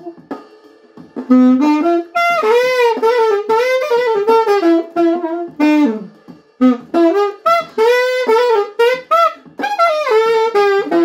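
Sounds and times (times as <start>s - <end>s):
solo saxophone melody: 0.0s - 0.2s, 1.3s - 11.0s.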